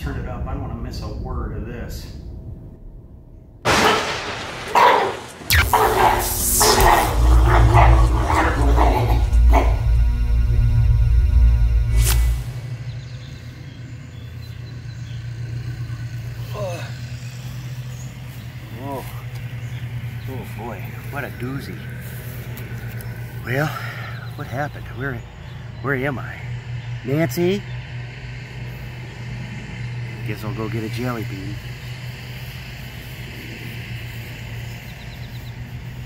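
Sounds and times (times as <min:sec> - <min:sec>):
thunder cracks and rumbling: 0:00.0 - 0:10.8
electric buzz: 0:03.6 - 0:23.6.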